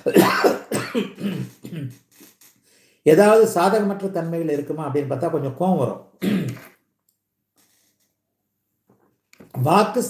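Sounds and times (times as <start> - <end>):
man clearing his throat: 0.0 - 2.1, 6.2 - 6.8.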